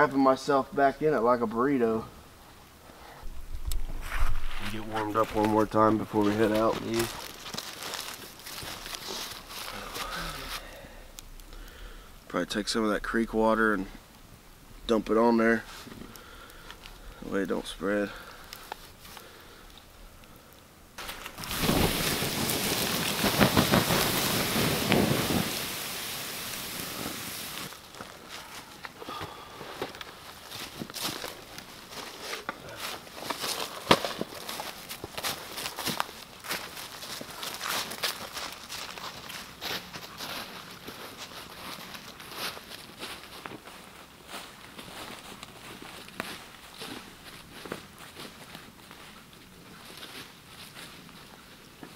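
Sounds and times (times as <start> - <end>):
water hissing on hot coals: 0.0 - 43.7
footsteps crunching dry leaves: 3.8 - 10.8, 21.0 - 51.6.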